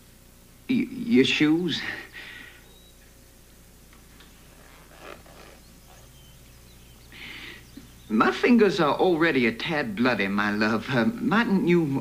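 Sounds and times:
boot laces rustling: 4.0s - 6.3s.

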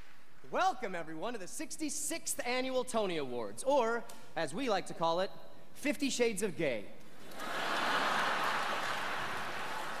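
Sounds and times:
audience applauding: 7.2s - 10.0s.

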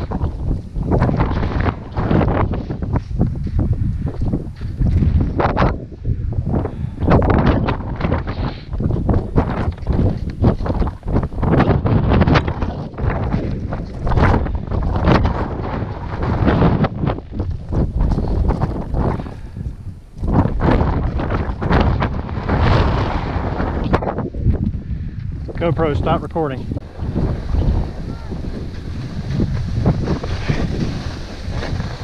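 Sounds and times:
wind buffeting microphone: 0.0s - 32.0s
skis scraping through snow: 26.9s - 32.0s.

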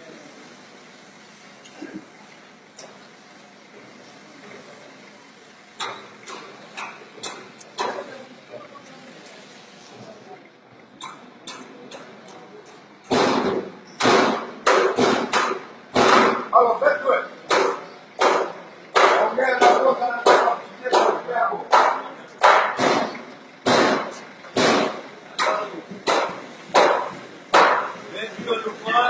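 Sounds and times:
sharp blows on a body: 13.1s - 16.5s
sharp loud hammering strikes: 13.1s - 16.5s, 17.5s - 28.0s.

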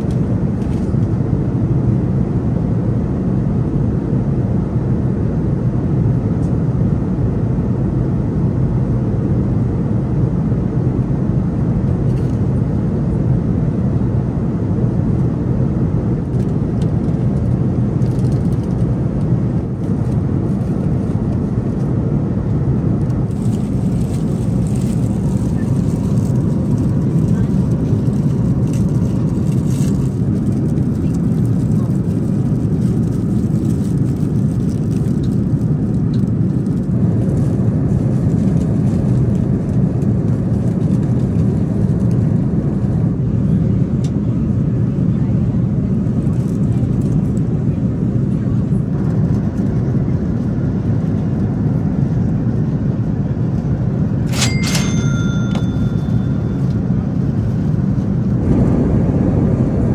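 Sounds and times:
airplane cabin engine drone: 0.0s - 59.9s.

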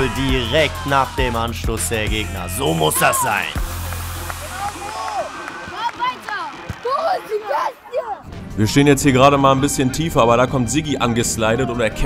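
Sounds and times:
players calling and shouting: 0.0s - 8.3s
music: 0.0s - 12.0s.

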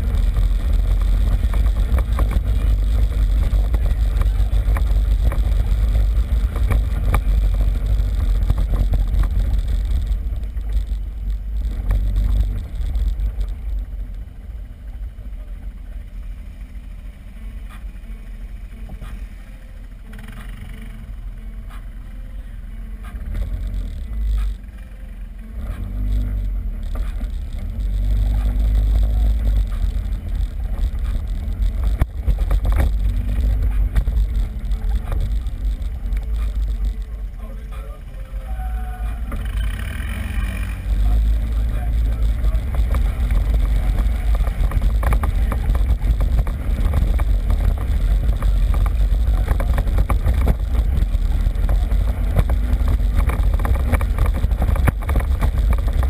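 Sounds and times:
atv engine rumbling: 0.0s - 56.0s.

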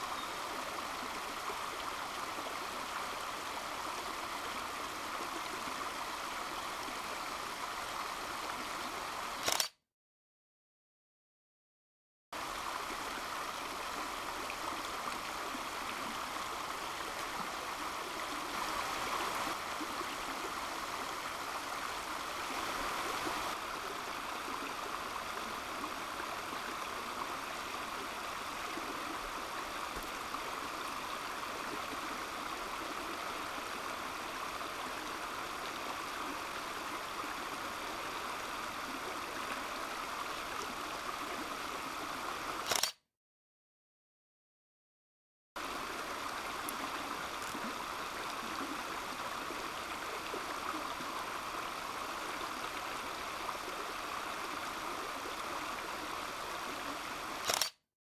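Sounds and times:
creek water rushing over stones: 0.0s - 9.5s, 12.4s - 42.7s, 45.6s - 57.7s.

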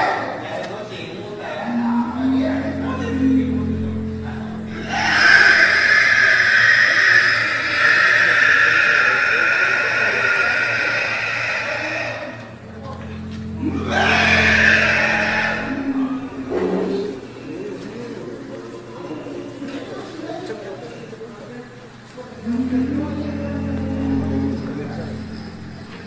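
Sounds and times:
man's high-pitched screeching cry: 4.7s - 12.4s.

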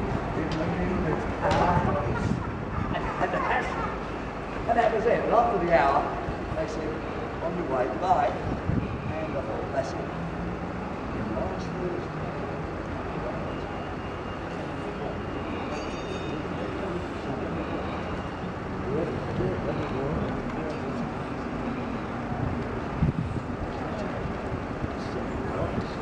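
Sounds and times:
indistinct low voices: 0.0s - 26.0s
street background noise: 0.0s - 26.0s.

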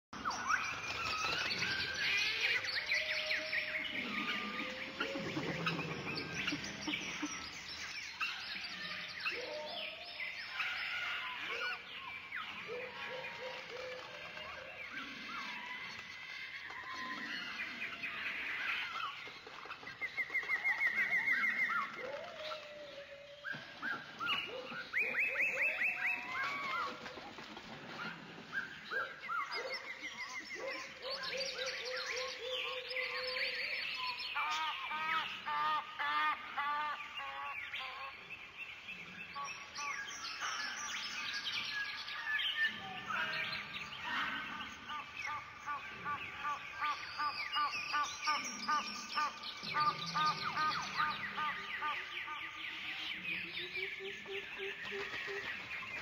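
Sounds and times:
birds chirping and calling: 0.2s - 56.0s.

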